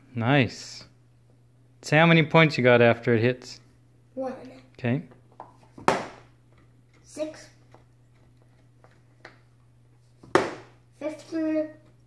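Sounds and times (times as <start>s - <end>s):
dart striking dartboard: 5.8s - 6.3s, 10.3s - 10.8s.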